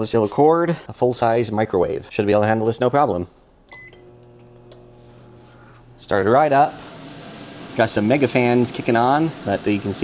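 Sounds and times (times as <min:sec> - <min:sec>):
microwave oven humming: 0:03.7 - 0:10.0.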